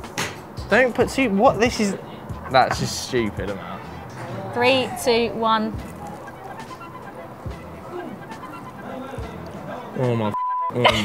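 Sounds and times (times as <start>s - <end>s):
quiet background music: 0.0s - 11.0s
faint crowd chatter: 1.9s - 11.0s.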